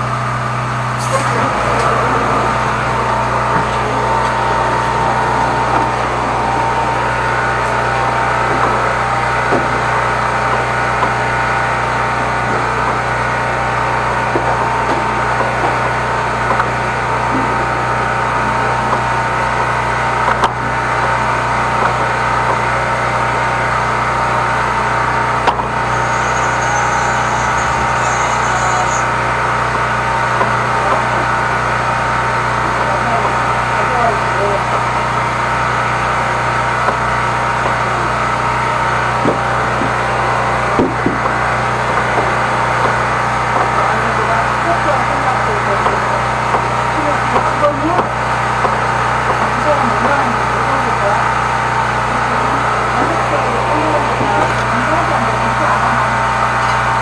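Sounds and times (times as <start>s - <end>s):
drain jetter running: 0.0s - 57.0s.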